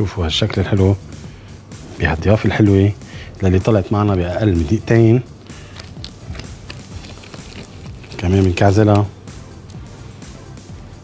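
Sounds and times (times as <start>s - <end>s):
hands rolling sticky dough: 5.3s - 10.4s.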